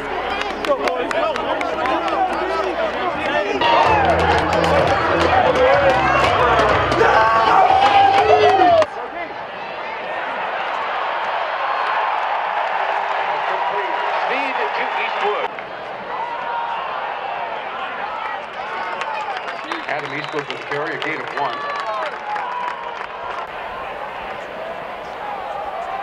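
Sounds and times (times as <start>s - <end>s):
music: 0.0s - 8.8s
players shouting together: 0.0s - 15.4s
stadium crowd noise: 0.0s - 26.0s.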